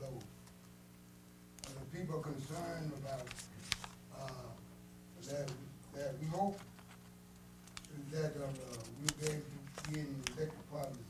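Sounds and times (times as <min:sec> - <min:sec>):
steady low hum: 0:00.0 - 0:11.0
man speaking over sound system: 0:08.0 - 0:11.0.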